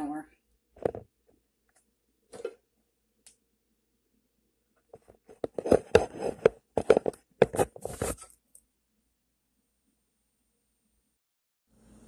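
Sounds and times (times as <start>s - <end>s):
phone handling knocks and rubbing: 5.4s - 8.1s.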